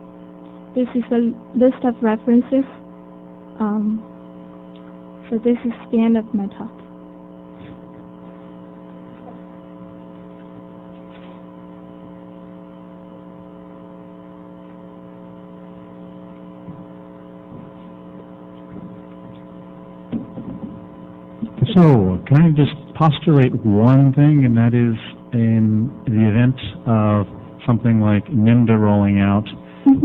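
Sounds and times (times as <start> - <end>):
electrical mains hum: 0.0 - 30.0.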